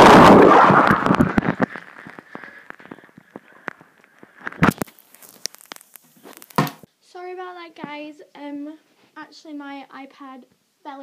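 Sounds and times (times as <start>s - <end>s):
underwater crackling and clicking: 0.6s - 6.9s.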